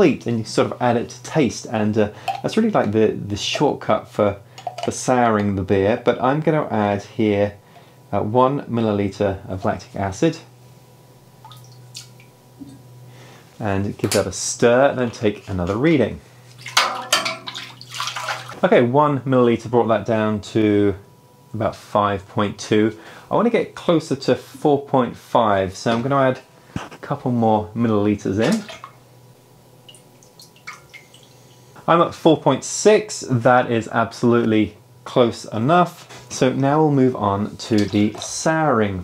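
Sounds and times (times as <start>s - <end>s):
low steady hum: 0.0s - 39.0s
faint liquid drips: 2.1s - 2.6s, 11.4s - 12.8s, 29.8s - 31.7s.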